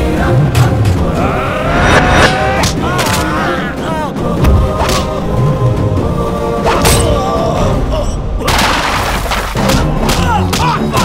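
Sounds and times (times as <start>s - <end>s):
background score music: 0.0s - 11.0s.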